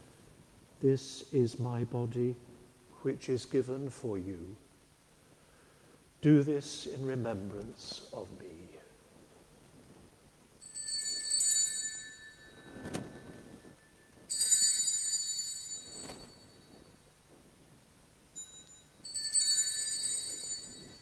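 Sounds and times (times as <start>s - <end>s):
altar bells ringing: 10.6s - 17.2s, 18.3s - 21.0s.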